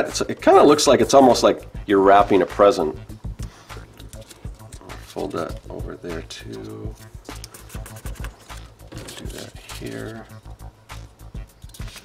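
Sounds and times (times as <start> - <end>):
wax paper crinkling: 7.3 - 10.3.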